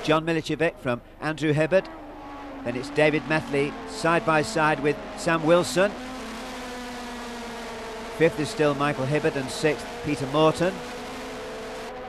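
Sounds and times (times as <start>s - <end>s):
racing car engines droning: 0.0s - 12.0s.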